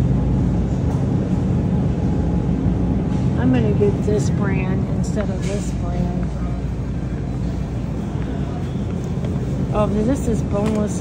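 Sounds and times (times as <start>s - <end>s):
refrigerated display cases humming: 0.0s - 11.0s.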